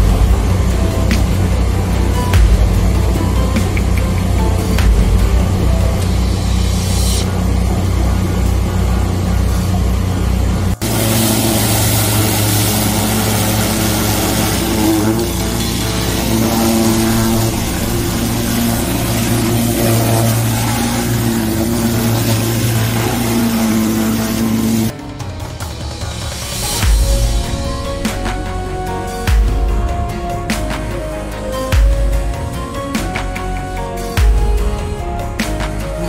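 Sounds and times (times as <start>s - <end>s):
sewer jetter engine running: 0.0s - 36.0s
water hose hissing: 10.7s - 24.9s.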